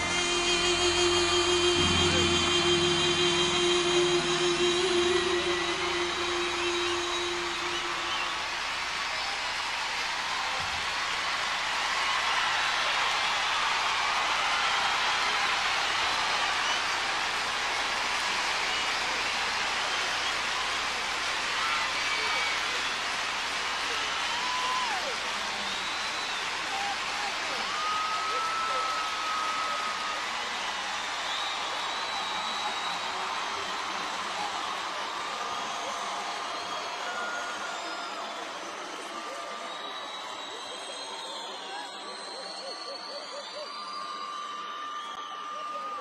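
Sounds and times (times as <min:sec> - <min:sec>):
band holding final note: 0:00.0 - 0:08.5
crowd cheering and screaming: 0:00.0 - 0:46.0.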